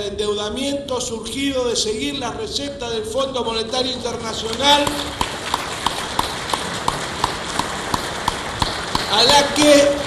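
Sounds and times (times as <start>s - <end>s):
short sharp knocks: 4.8s - 10.0s.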